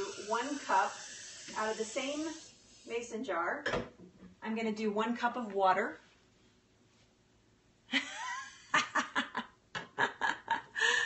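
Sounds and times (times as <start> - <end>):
woman laughing: 7.9 - 11.0.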